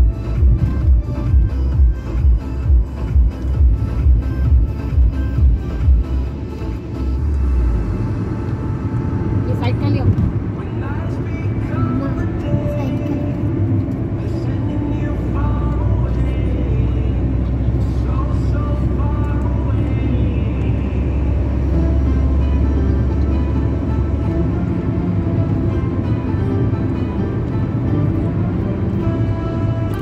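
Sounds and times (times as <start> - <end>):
car road and engine rumble: 0.0 - 30.0
music playing: 0.0 - 30.0.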